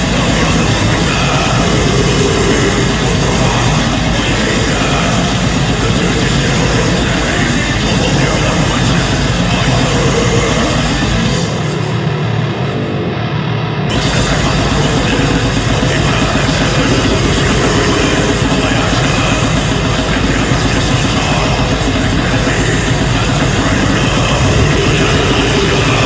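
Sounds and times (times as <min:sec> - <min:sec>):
heavy metal music: 0:00.0 - 0:26.0.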